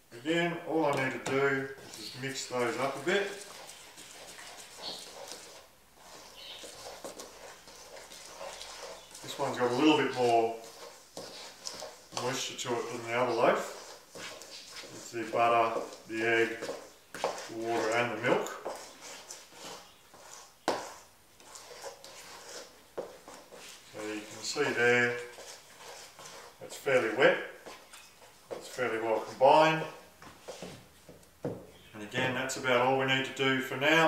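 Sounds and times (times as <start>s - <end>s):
hands squishing sticky dough: 0.7s - 31.0s.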